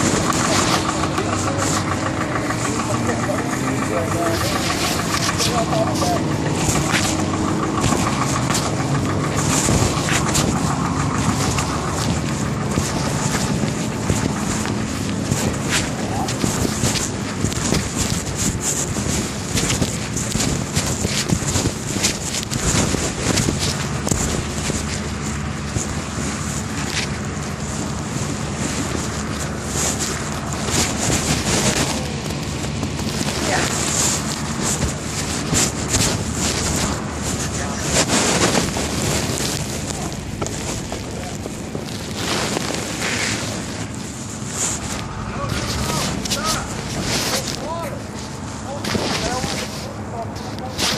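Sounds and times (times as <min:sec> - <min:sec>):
diesel engine running: 0:00.0 - 0:50.9
microphone rubbing and handling: 0:00.0 - 0:50.9
wind noise on microphone: 0:00.0 - 0:50.9.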